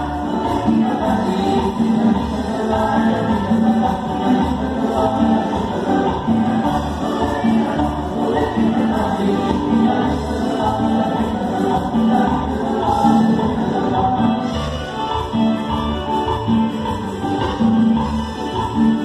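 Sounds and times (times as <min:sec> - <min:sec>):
dance band music over loudspeakers: 0:00.0 - 0:19.0
group singing: 0:00.0 - 0:19.0.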